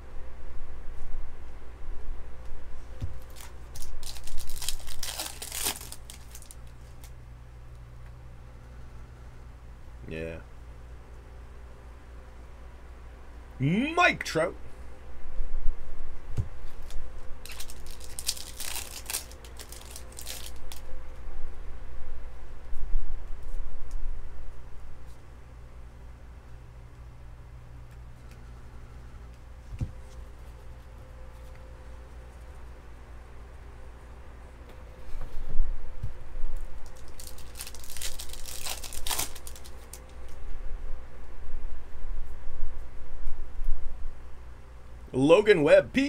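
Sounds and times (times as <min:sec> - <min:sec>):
plastic wrapping crinkling and tearing: 0:03.2 - 0:07.1, 0:16.7 - 0:20.9, 0:36.6 - 0:40.4
trading cards rustling: 0:03.2 - 0:07.1, 0:16.6 - 0:20.8, 0:36.6 - 0:40.4.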